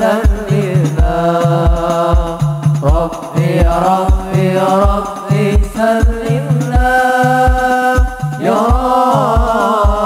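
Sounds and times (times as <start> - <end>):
frame drums beating: 0.0 - 10.0
men singing a devotional chant: 0.0 - 10.0.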